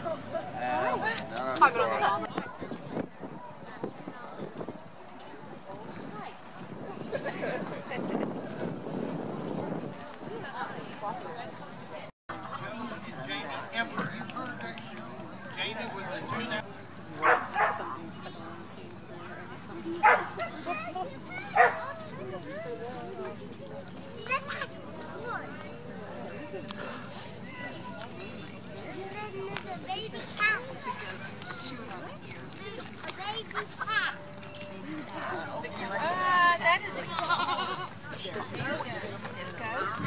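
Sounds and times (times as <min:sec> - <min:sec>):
people talking: 0:00.0 - 0:08.7, 0:09.3 - 0:40.0
background chatter: 0:00.0 - 0:40.0
goat bleating: 0:37.0 - 0:37.9.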